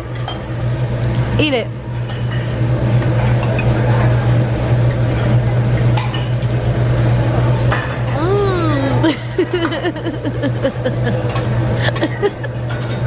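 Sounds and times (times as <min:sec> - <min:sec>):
restaurant background hum: 0:00.0 - 0:13.0.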